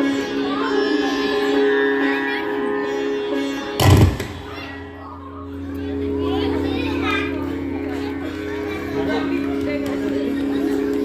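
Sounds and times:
indistinct voices talking: 0.0s - 11.0s
steady instrumental drone: 0.0s - 11.0s.

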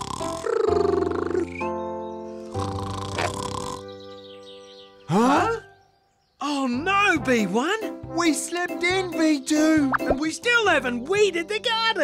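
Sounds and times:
soft cartoon music: 0.0s - 12.0s.

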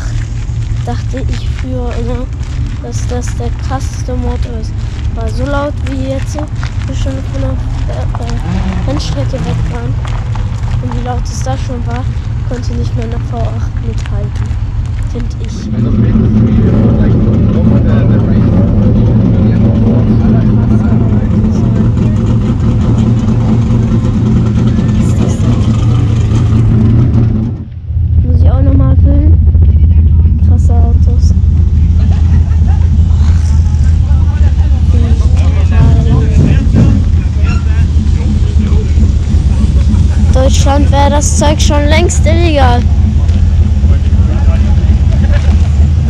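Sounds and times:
voices: 0.0s - 26.6s, 28.2s - 46.0s
race car engines droning: 0.0s - 46.0s.

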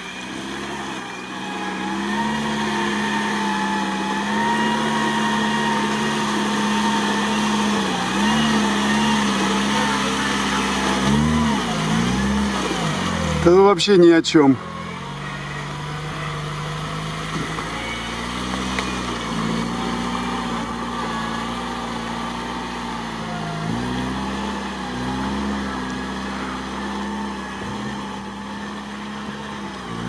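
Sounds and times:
car engine revving under load: 0.0s - 30.0s.

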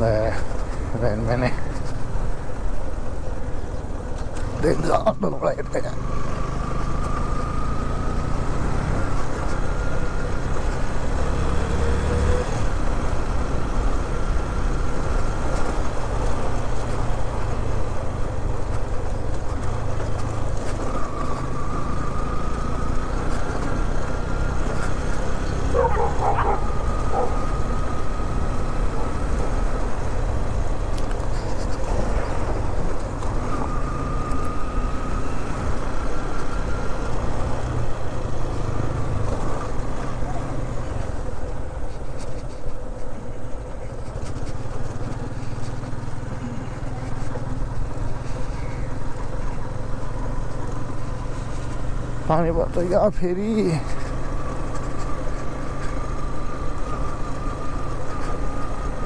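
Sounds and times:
wind and road noise: 0.0s - 59.0s
motorcycle engine accelerating: 4.4s - 59.0s.

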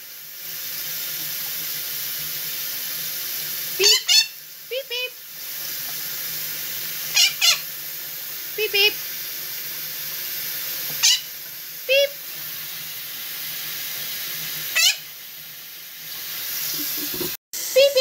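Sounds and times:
parrot beeping calls: 3.8s - 4.4s, 7.1s - 7.7s, 11.0s - 11.3s, 14.7s - 15.1s
steady hiss: 15.4s - 18.0s.

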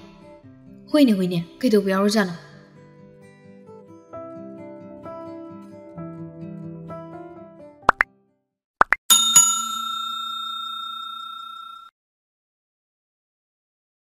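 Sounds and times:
small bell ringing: 9.1s - 11.9s.

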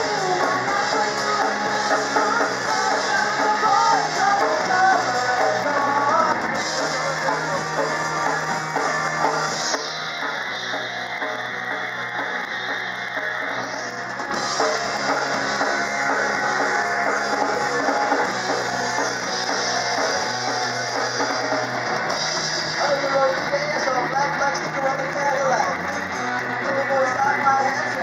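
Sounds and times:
person singing: 0.0s - 9.8s
drum kit: 0.0s - 28.0s
electric guitars: 0.0s - 28.0s.

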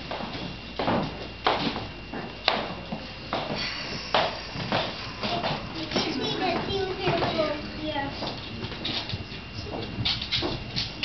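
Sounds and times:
footsteps on hardwood floor: 0.0s - 11.0s
room noise: 0.0s - 11.0s.

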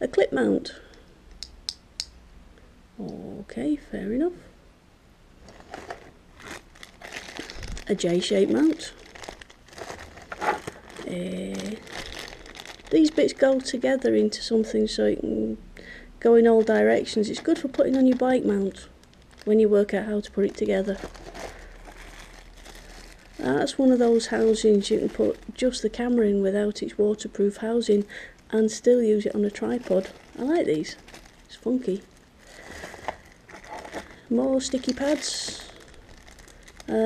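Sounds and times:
plastic bag crinkling: 5.4s - 14.0s, 16.4s - 26.2s, 27.6s - 37.0s.

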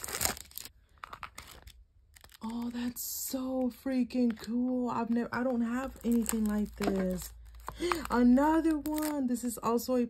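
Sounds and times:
cellophane sleeve crinkling: 0.0s - 9.2s.

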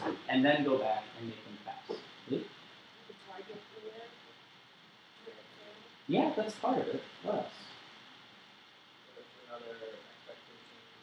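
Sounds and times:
person speaking syllable: 0.0s - 2.0s, 5.6s - 7.6s
faint steady hiss: 0.0s - 11.0s.

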